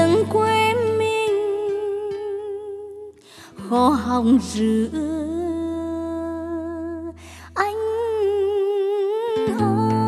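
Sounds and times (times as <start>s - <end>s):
plucked acoustic guitar: 0.0s - 6.3s, 7.8s - 10.0s.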